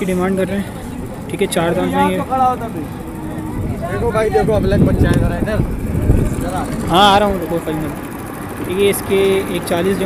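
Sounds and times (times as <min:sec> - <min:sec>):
men talking: 0:00.0 - 0:10.0
low rumble: 0:03.0 - 0:07.5.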